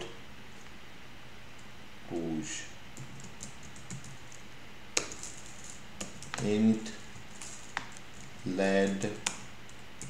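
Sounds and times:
typing on computer keyboard: 0:03.0 - 0:04.4, 0:05.0 - 0:10.0.

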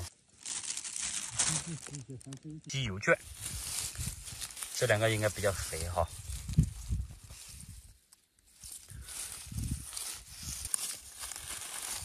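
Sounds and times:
rustling of pine needles: 0:00.0 - 0:12.0.

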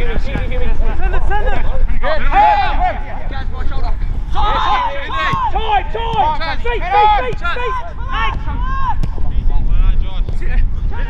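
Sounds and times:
wind rumble on microphone: 0:00.0 - 0:11.0
men shouting: 0:01.2 - 0:03.3, 0:04.3 - 0:09.0.

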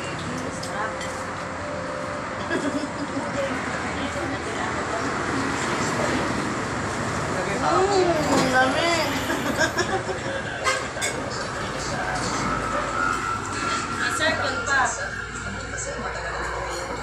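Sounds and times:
indistinct talk: 0:02.4 - 0:17.0
cutlery clinking on plates: 0:16.1 - 0:17.0.

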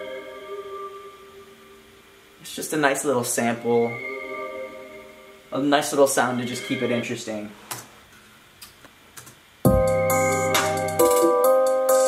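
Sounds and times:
hip-hop beat with synth chords: 0:09.7 - 0:12.0.

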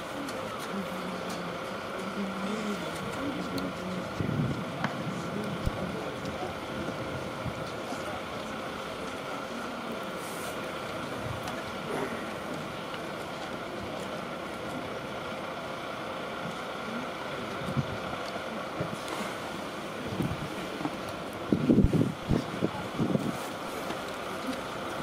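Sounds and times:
outdoor ballpark background noise: 0:00.0 - 0:25.0.

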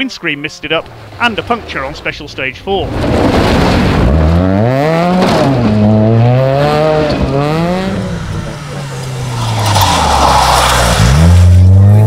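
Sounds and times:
tyres on gravel: 0:00.0 - 0:12.0
rally car engine revving: 0:00.6 - 0:12.0.

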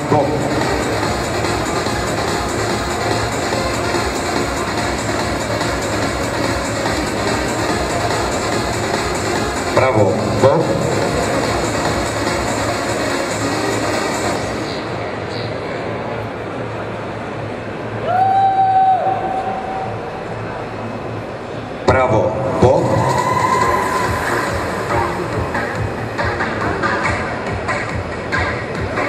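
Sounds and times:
background music: 0:00.0 - 0:15.3, 0:21.9 - 0:29.0
crowd din: 0:00.0 - 0:18.1, 0:19.2 - 0:29.0.

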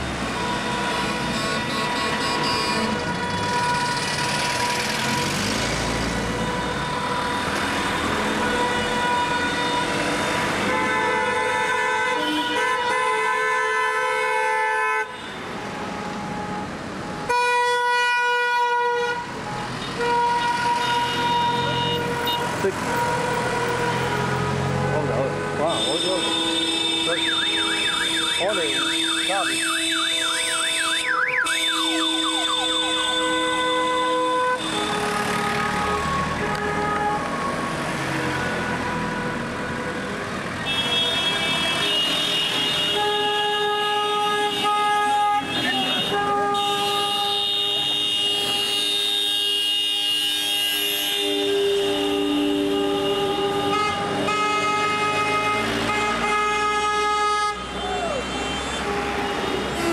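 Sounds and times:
car horns honking: 0:00.2 - 0:15.6, 0:16.2 - 0:39.5, 0:40.5 - 0:59.9
warbling car horn: 0:25.7 - 0:37.2.

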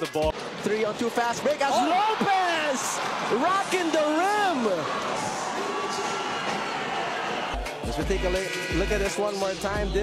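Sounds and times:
arena crowd cheering: 0:01.1 - 0:09.2.

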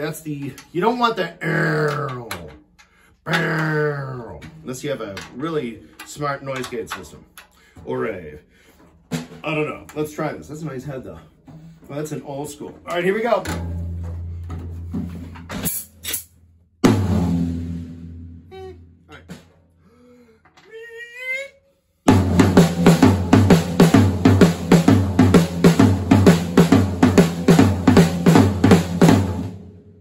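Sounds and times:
drum kit groove: 0:03.3 - 0:19.7, 0:22.1 - 0:29.8.

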